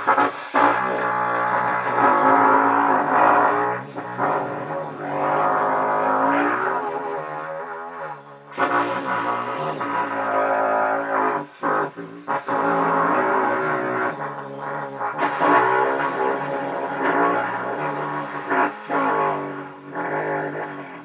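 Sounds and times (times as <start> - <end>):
trumpet low buzzy tones: 0.0 - 21.0.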